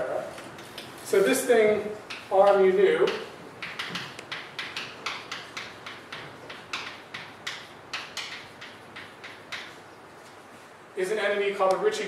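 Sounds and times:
chalk tapping and scraping: 0.0s - 10.4s.

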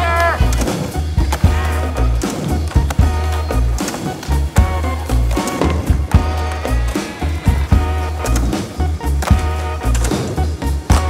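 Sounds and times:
music with steady bass line: 0.0s - 11.0s
skateboard clacks: 0.2s - 11.0s
skateboard rolling on stone: 0.6s - 11.0s.

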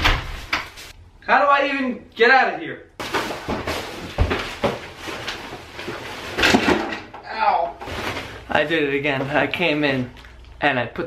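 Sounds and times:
plastic bags rustling: 3.0s - 7.0s, 7.8s - 10.6s.

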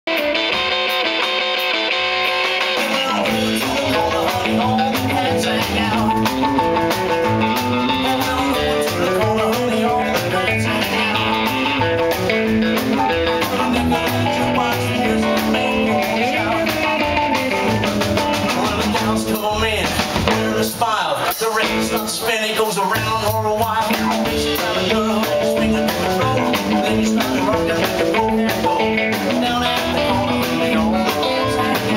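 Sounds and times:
drum kit: 0.1s - 31.9s
keyboard: 0.1s - 31.9s
acoustic guitar: 2.2s - 31.9s
upright double bass: 2.9s - 31.9s.

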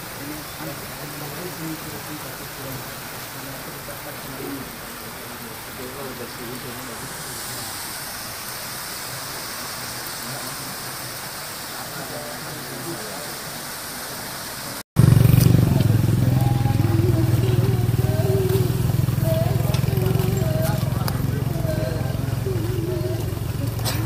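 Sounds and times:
waterfall splashing into river: 0.0s - 24.0s
crowd chatter: 15.2s - 24.0s.

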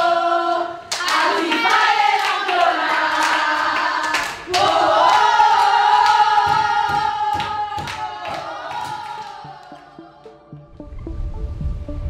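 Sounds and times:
women singing a football chant: 0.0s - 10.3s
people clapping: 0.9s - 10.0s.

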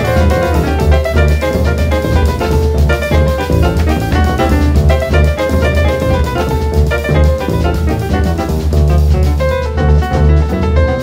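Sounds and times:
jazz piano trio: 0.0s - 11.0s.

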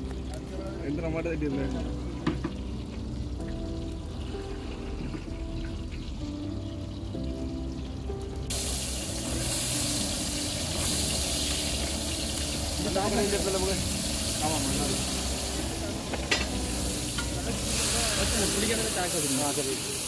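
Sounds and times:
onions sizzling in hot oil: 0.1s - 20.0s.

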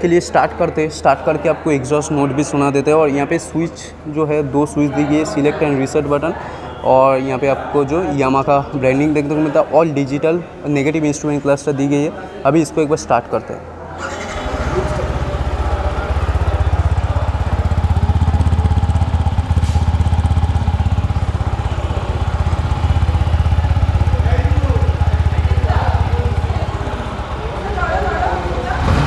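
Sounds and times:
motorcycle engine starting and idling: 14.0s - 29.0s.

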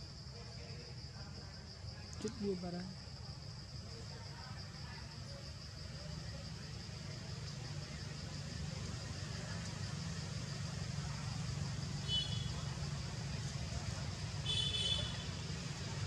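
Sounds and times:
low rumble of distant traffic: 0.0s - 16.0s.

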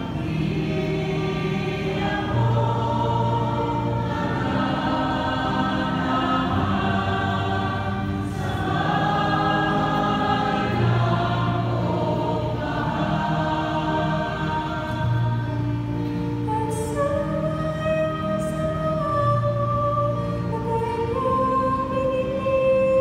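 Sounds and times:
choir singing: 0.0s - 23.0s
person singing through microphone: 16.5s - 23.0s.

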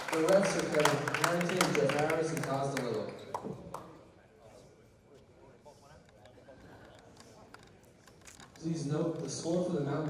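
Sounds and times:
faint crowd chatter: 0.2s - 10.0s.

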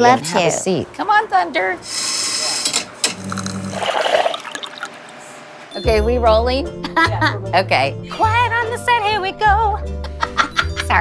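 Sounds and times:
espresso machine humming: 1.8s - 5.6s.

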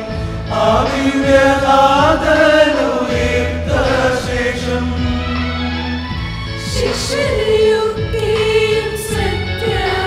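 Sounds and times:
choir singing in harmony: 0.0s - 10.0s.

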